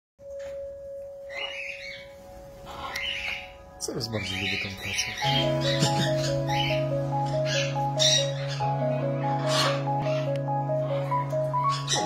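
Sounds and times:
parrot cry: 2.7s - 3.6s, 4.5s - 12.0s.

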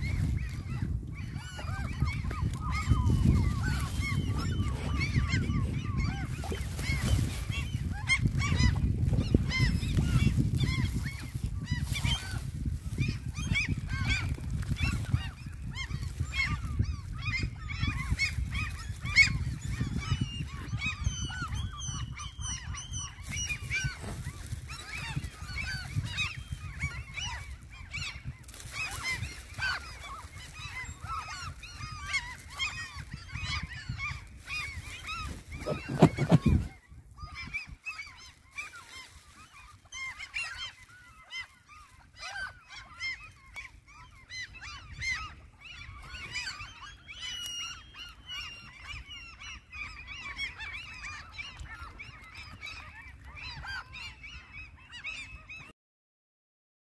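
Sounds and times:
waterfowl calling: 0.0s - 55.7s
wind on microphone: 0.0s - 55.7s.

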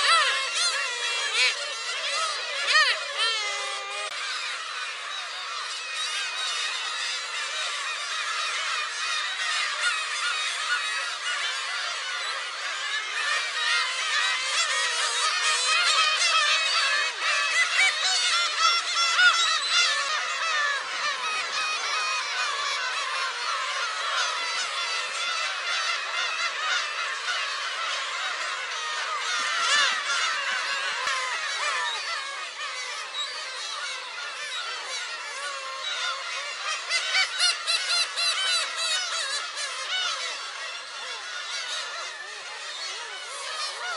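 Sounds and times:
gull colony mewing calls: 0.0s - 43.9s.

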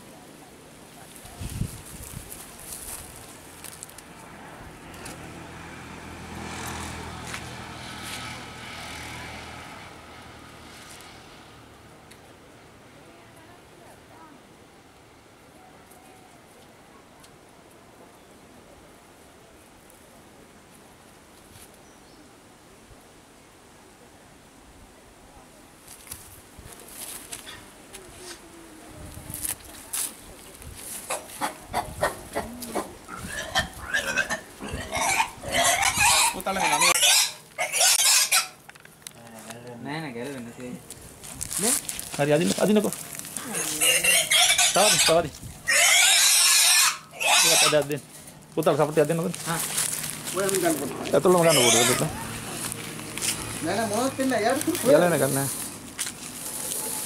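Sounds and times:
boar wavering calls: 31.1s - 38.6s, 43.4s - 47.9s, 51.0s - 52.7s
boar grunting: 50.7s - 52.4s.

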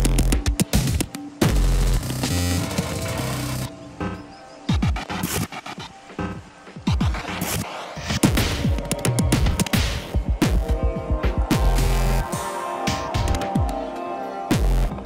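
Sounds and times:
glitch electronic music: 0.0s - 15.0s.

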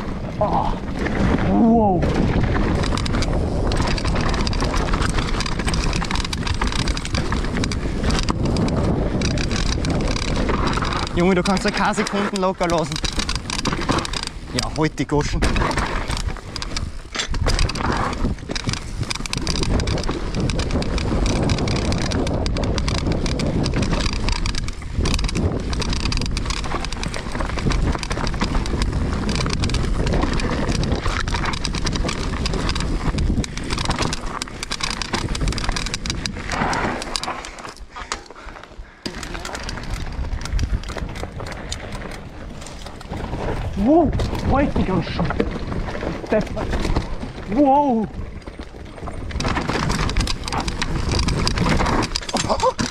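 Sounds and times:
bike rattling over bumps: 0.0s - 52.9s
bike tyres on dirt: 0.0s - 52.9s.

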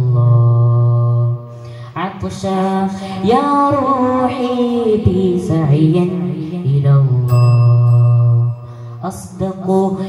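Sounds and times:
boy singing into microphone: 0.0s - 10.0s.

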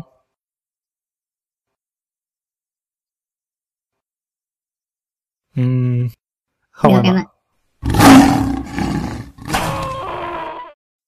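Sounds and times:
rough vocal roar: 7.8s - 10.0s.

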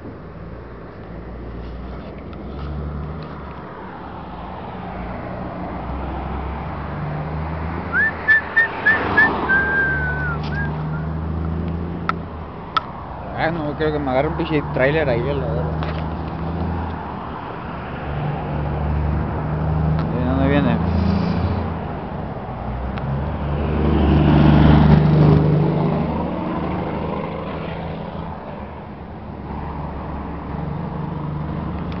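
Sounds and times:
highway traffic rumble: 0.0s - 32.0s
vehicle passing: 0.4s - 32.0s.

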